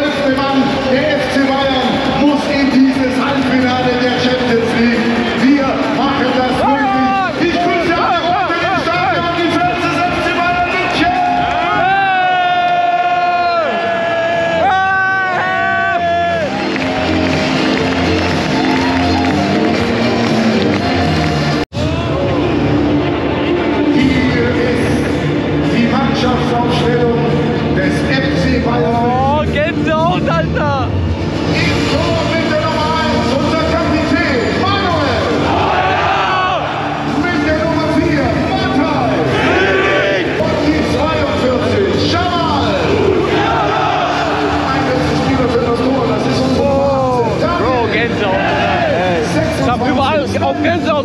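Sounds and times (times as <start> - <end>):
music over loudspeakers: 0.0 - 51.0.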